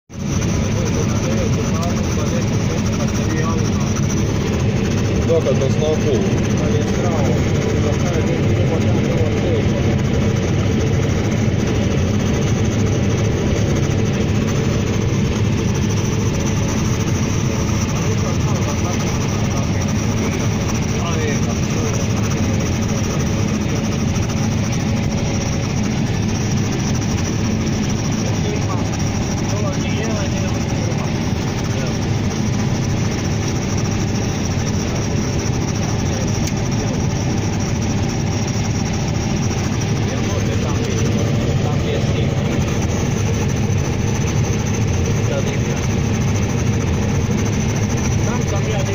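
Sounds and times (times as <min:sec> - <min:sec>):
combine harvester drone: 0:00.1 - 0:48.9.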